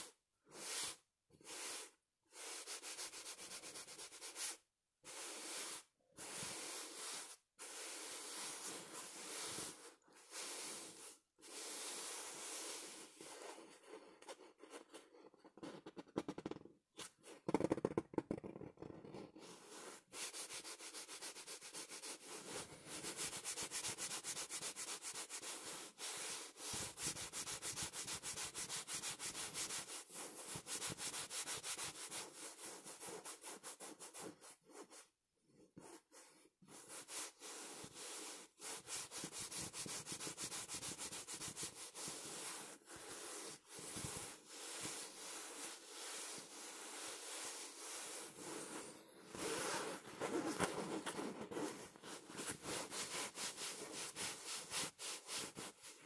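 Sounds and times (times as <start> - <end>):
fingers scratching fabric pillow: 38.2 - 56.0.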